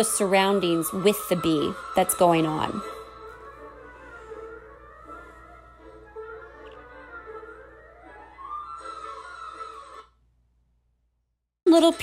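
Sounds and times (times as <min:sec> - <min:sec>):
faint classical instrumental music: 0:00.0 - 0:10.0.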